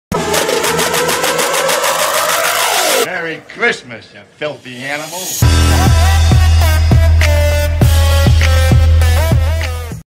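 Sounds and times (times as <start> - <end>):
rising held tone: 5.4 - 7.9.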